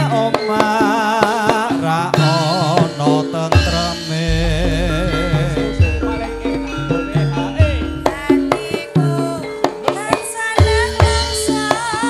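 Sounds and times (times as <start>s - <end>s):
ringing metallophone notes: 0.0s - 12.0s
kendang drum strokes: 2.2s - 8.8s
woman singing gliding notes: 6.0s - 11.8s.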